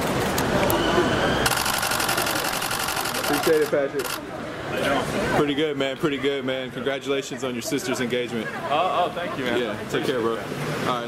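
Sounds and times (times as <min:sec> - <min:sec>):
street noise: 0:00.0 - 0:11.0
camera shutter burst: 0:01.4 - 0:04.2.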